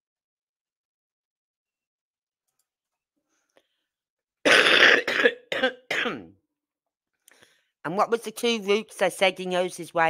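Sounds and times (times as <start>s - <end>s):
person coughing: 4.5s - 6.3s.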